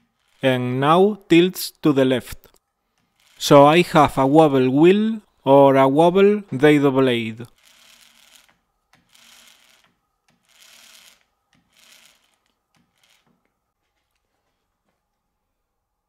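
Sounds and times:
metal washers scraping: 0:10.5 - 0:13.4.

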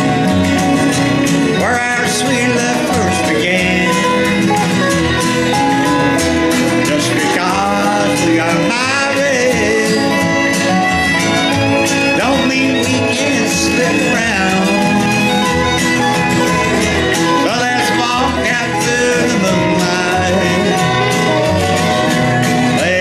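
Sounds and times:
guitar: 0:00.0 - 0:23.0
sliding fiddle-like lead line: 0:00.0 - 0:23.0
upright bass: 0:00.0 - 0:23.0.

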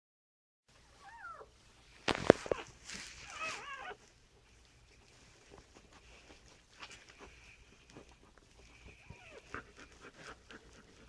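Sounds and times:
puppy crying: 0:01.0 - 0:01.5, 0:02.4 - 0:04.1, 0:08.8 - 0:10.0.

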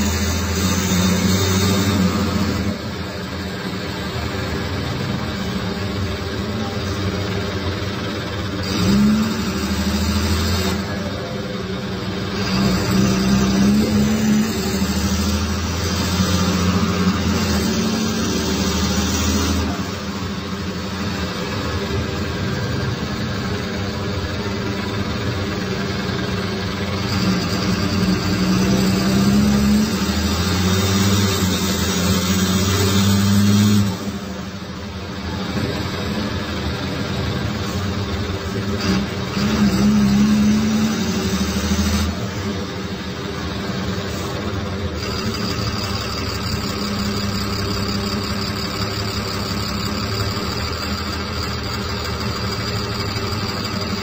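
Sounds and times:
bus diesel engine under load: 0:00.0 - 0:54.0.

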